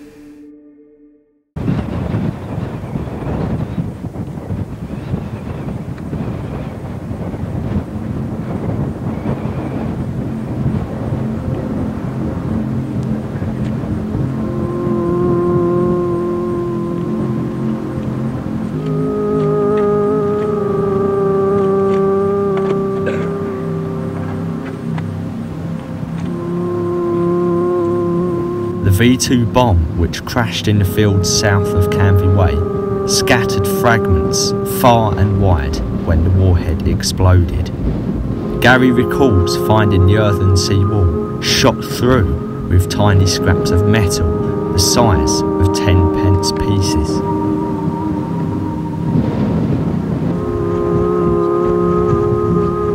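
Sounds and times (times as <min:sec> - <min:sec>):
long held chords: 0:00.0 - 0:52.9
dense noisy music texture: 0:07.5 - 0:52.9.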